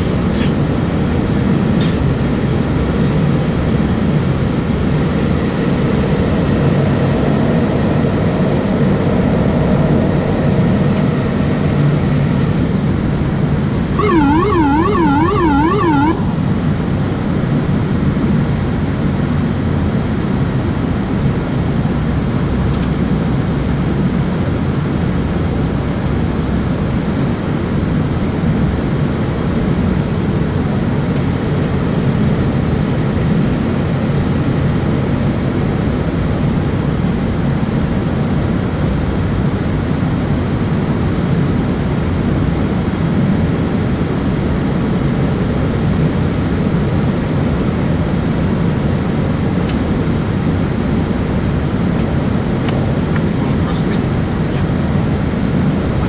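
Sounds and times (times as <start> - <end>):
turboprop engines droning: 0.0 - 32.5, 33.3 - 56.0.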